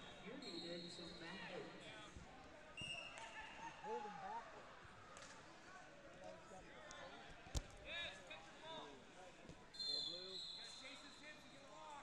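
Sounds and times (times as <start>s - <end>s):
people talking: 0.0s - 4.7s.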